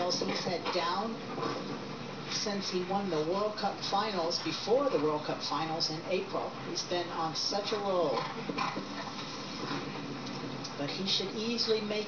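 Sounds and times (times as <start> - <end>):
commentator speaking: 0.0 - 1.5, 2.3 - 8.4, 10.7 - 12.0.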